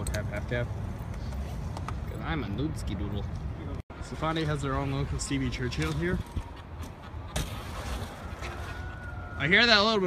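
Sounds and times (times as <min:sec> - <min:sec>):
bike riding on concrete ramp: 0:04.5 - 0:09.0.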